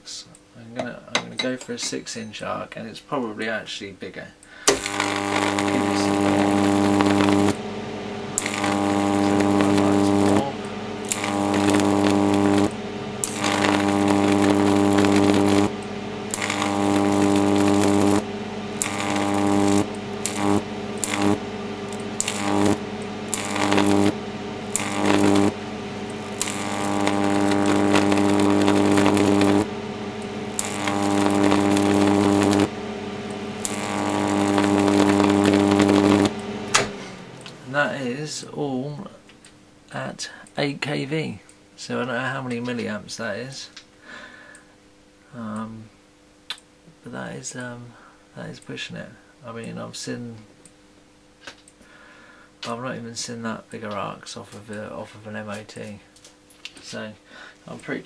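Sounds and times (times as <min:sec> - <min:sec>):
high-voltage arc buzzing: 0:04.4 - 0:48.5.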